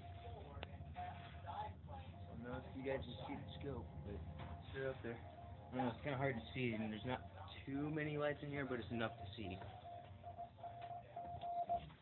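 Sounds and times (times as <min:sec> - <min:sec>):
morse code beeps: 0:02.2 - 0:12.0.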